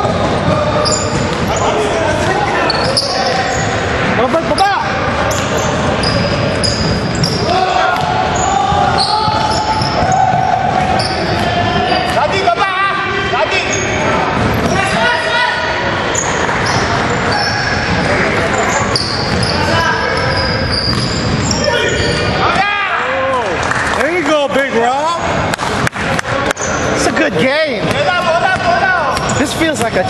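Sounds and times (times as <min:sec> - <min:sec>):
basketball bouncing: 0:00.0 - 0:01.6, 0:05.1 - 0:12.5, 0:16.4 - 0:21.6, 0:27.8 - 0:30.0
sneakers squeaking on court: 0:00.2 - 0:12.5, 0:13.5 - 0:22.4, 0:26.4 - 0:27.2, 0:27.8 - 0:30.0
people calling out: 0:04.6 - 0:23.5.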